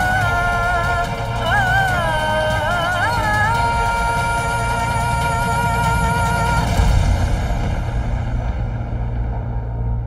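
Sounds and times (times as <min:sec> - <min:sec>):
deep rumbling drone: 0:00.0 - 0:10.0
low hit: 0:00.2 - 0:10.0.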